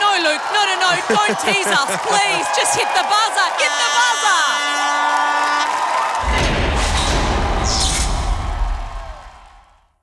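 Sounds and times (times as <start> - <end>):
crowd cheering: 0.0 - 10.0
whoosh: 6.2 - 9.3.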